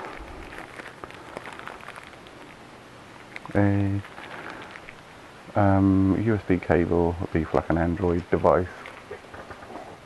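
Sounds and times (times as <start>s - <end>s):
small irregular clicks: 0.0s - 5.1s
faint rustling: 0.0s - 5.2s.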